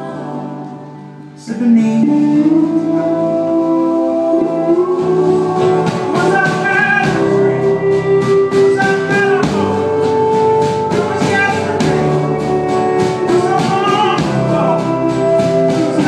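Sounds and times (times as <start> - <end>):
man singing long notes: 1.4 - 16.0
strummed acoustic guitar: 2.8 - 16.0.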